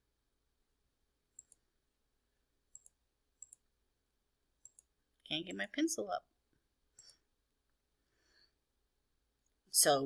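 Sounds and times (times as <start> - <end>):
computer mouse double-clicks: 2.7 - 3.6, 4.6 - 4.9.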